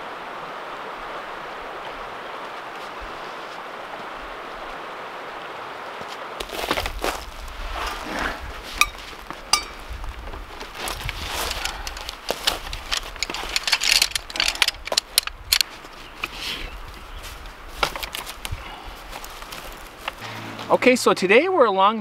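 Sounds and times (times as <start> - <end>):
river water rushing: 0.0 - 21.8
folding chair poles clicking: 11.2 - 16.4.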